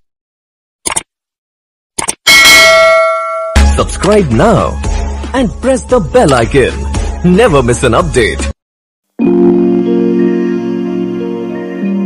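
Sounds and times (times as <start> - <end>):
quick clicks: 0.8 - 1.1
bright bell chime: 2.3 - 3.8.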